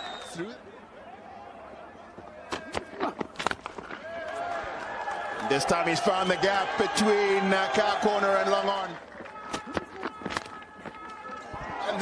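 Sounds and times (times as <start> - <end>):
crowd noise hum: 0.0 - 12.0.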